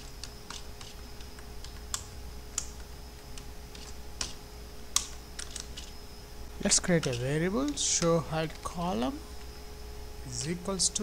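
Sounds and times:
computer keyboard typing: 0.0 - 5.9
faint steady hum: 0.0 - 11.0.

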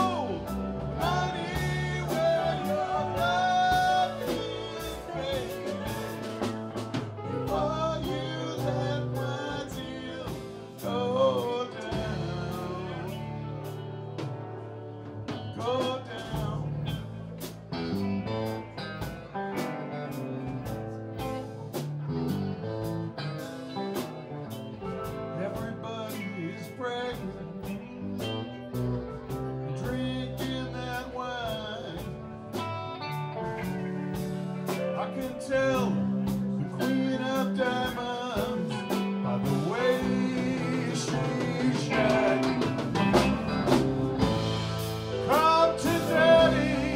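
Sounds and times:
bass guitar: 0.0 - 46.9
drum kit beat: 0.0 - 46.9
guitars: 0.0 - 46.9
keyboard: 0.0 - 46.9.

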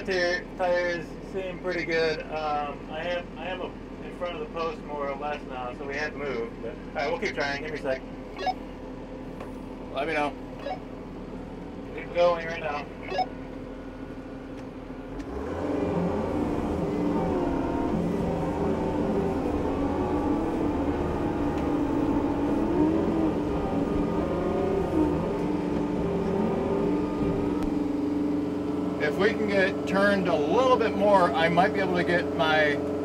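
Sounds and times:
tractor diesel engine under load: 9.7 - 33.0.

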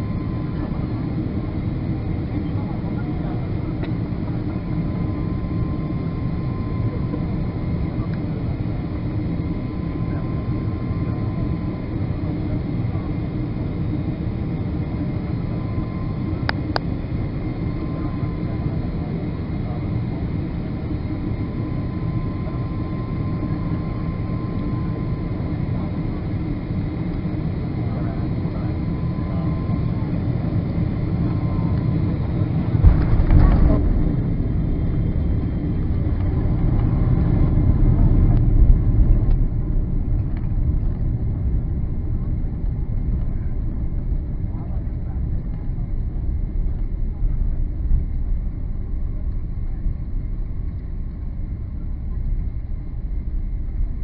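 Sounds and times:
jet engines whining: 0.0 - 54.0
rumble of jet decelerating: 0.0 - 54.0.

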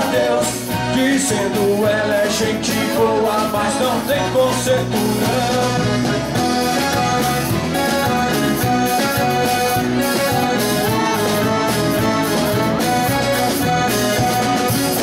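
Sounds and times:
band playing instrumental music: 0.0 - 15.0.

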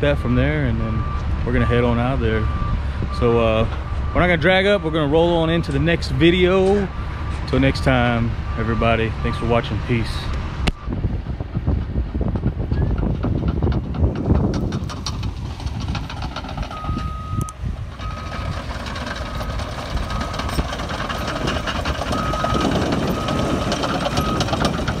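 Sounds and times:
bulldozer diesel engine rumbling: 0.0 - 25.0
backup alarm beeping: 16.7 - 20.7, 22.0 - 24.8.

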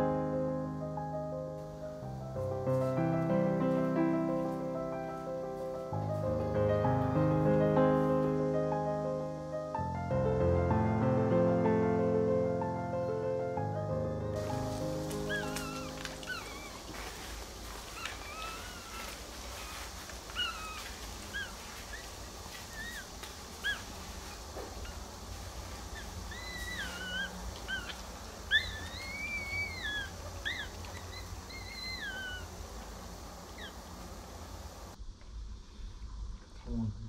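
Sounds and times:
puppies squeaking and crying: 14.4 - 25.1, 25.8 - 34.0.

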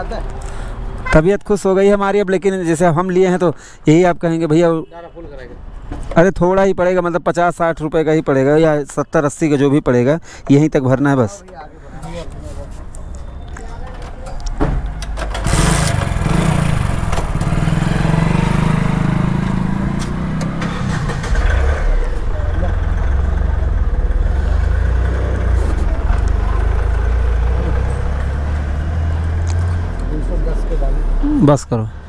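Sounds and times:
engine-like sound: 15.3 - 31.6.

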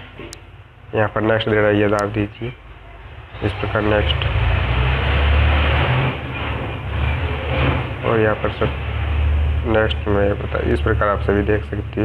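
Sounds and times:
continuous low hum: 0.0 - 4.6.

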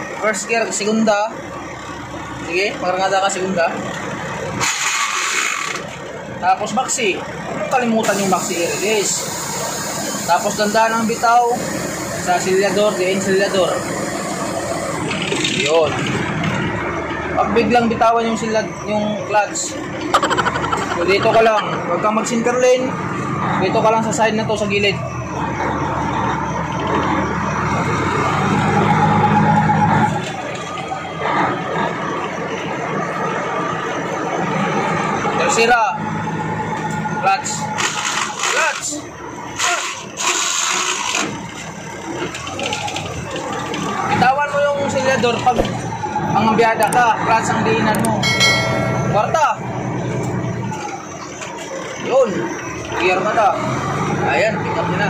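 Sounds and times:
truck engine pulling under load: 0.0 - 55.0.

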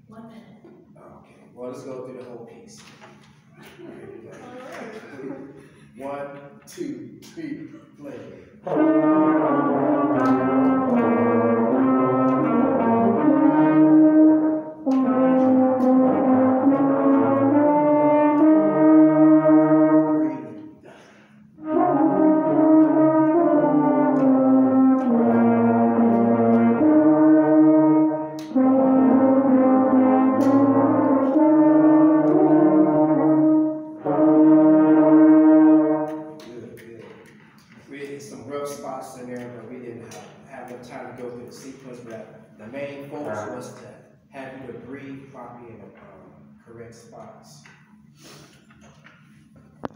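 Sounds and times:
brass ensemble playing chords: 8.4 - 36.5.

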